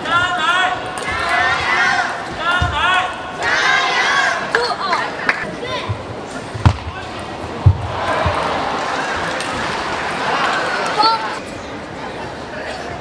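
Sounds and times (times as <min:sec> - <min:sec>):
crowd noise: 0:00.0 - 0:13.0.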